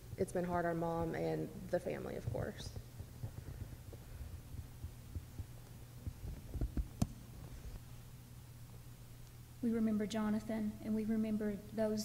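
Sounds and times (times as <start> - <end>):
soft low thumps: 0.0 - 7.9
low electrical hum: 0.0 - 12.0.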